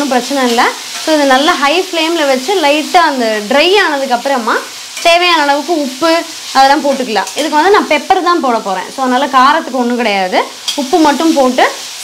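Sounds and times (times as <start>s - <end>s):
woman talking: 0.0s - 11.8s
vegetables stir-frying: 0.0s - 12.0s
metal spatula scraping pan: 0.8s - 1.5s.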